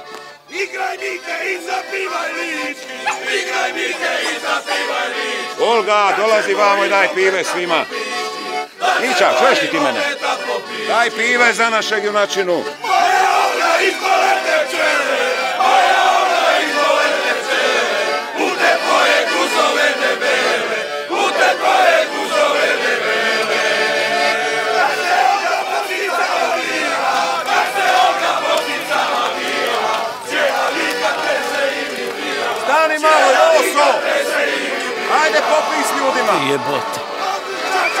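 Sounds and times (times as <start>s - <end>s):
men cheering and chanting: 0.5s - 12.0s, 12.8s - 38.0s.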